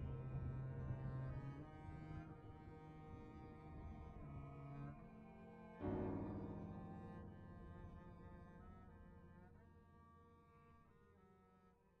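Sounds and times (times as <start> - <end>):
low sustained music chords: 0.0 - 11.4.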